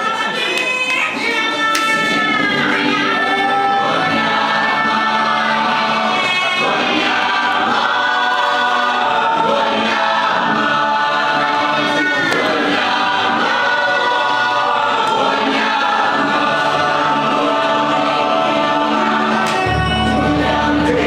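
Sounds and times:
choir singing gospel music: 1.0 - 21.0.

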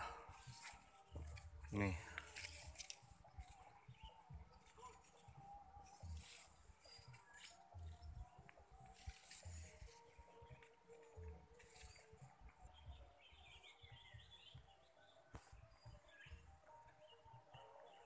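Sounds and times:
faint outdoor ambience: 0.0 - 18.0.

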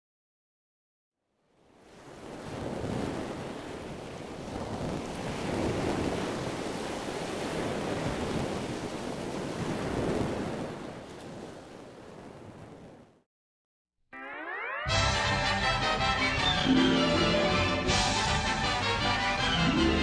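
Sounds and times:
ocean waves washing: 1.7 - 13.2.

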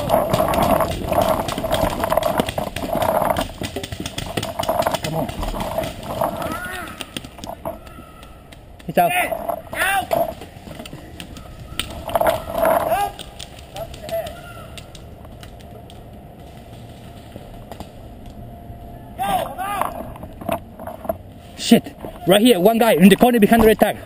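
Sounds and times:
players shouting: 6.3 - 15.0, 19.1 - 20.2.

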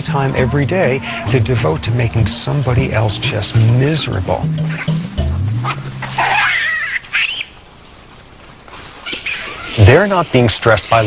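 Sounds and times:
faint background hiss: 0.0 - 11.0
baboon high-pitched call: 4.5 - 7.6, 9.0 - 9.8.

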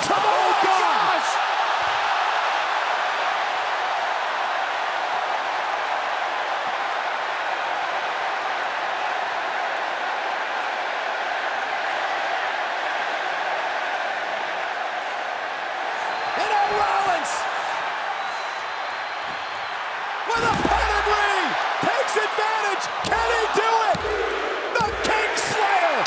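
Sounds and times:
stadium crowd cheering and applauding: 0.0 - 26.0.

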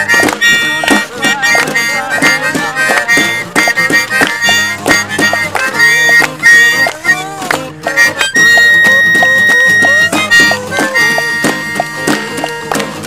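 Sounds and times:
harmonica solo: 0.0 - 12.8
strummed acoustic guitars: 0.0 - 13.0.

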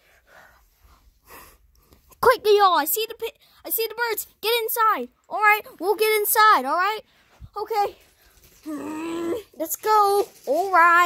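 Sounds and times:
faint breathing: 0.0 - 2.1, 7.0 - 8.6.

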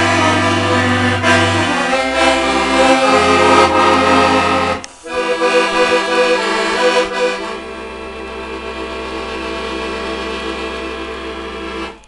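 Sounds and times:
accordion sustained chord: 0.0 - 12.0.

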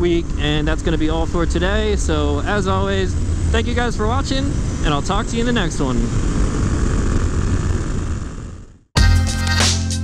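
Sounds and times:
wind rushing over microphone: 0.0 - 8.8
motorcycle engine running: 0.0 - 9.1.

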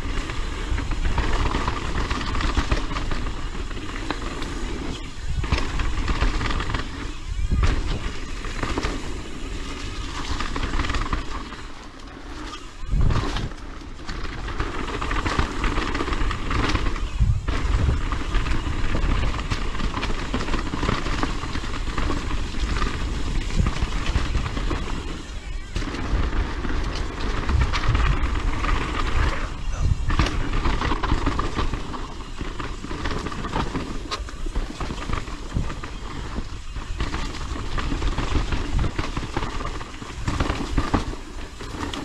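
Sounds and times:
bike rattling over bumps: 0.0 - 42.0
bike tyres rolling over dirt: 0.0 - 42.0
wind buffeting microphone: 0.0 - 42.0.

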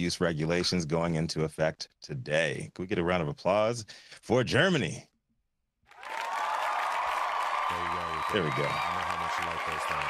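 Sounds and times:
crowd applause: 5.9 - 10.0.

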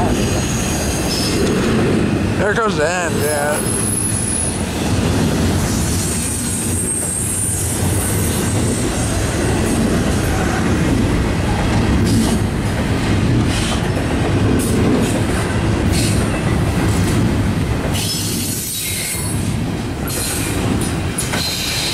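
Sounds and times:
freight train wheels rumbling: 0.0 - 21.9
wheels clickety-clack over joints: 5.0 - 21.9
wheel squeal: 6.6 - 7.7.

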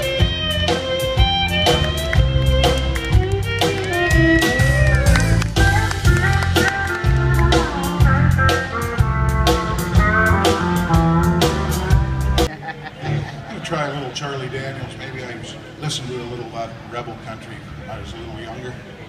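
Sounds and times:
fiddle: 0.0 - 8.7
drum kit beat: 0.0 - 12.5
sliding lead guitar notes: 0.0 - 13.4
guitars: 0.0 - 13.5.

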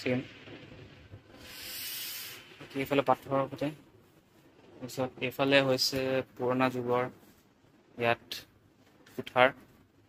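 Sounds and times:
man speaking: 0.0 - 0.4, 2.6 - 3.8, 4.8 - 7.2, 8.0 - 8.5, 9.1 - 9.6.

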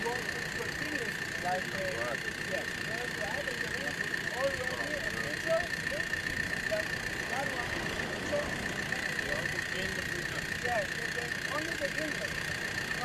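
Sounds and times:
crowd talking: 0.0 - 13.0
machine hum with high whine: 0.0 - 13.0.

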